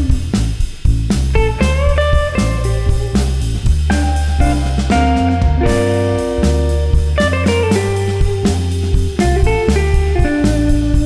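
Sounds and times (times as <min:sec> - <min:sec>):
bass guitar: 0:00.0 - 0:11.0
drum kit beat: 0:00.0 - 0:11.0
lead electric guitar: 0:01.3 - 0:11.0.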